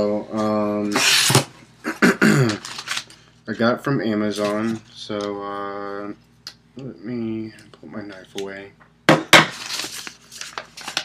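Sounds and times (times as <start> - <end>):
paper rustling: 9.5 - 11.0.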